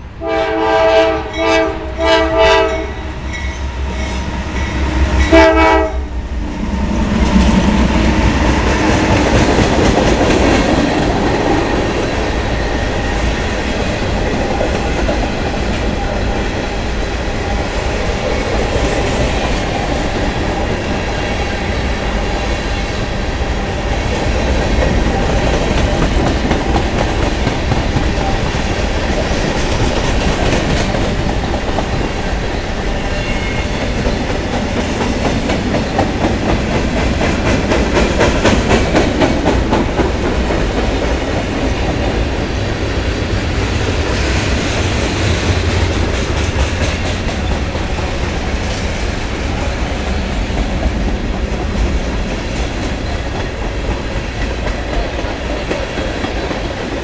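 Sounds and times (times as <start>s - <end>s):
train horn blast: 0.2s - 6.2s
train wheels clacking over rail joints: 24.1s - 32.2s, 33.6s - 42.2s, 43.9s - 57.0s.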